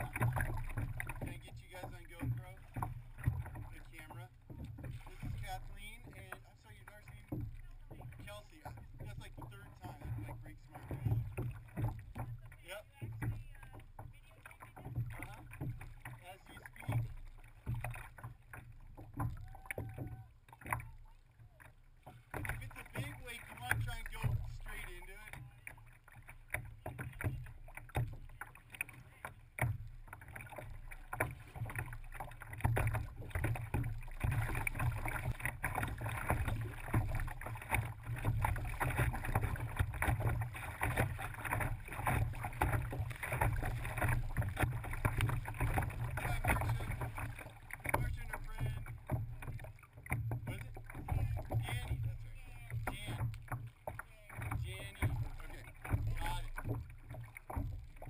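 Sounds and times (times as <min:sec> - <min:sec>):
water sloshing against kayak hull: 0:00.0 - 0:58.0.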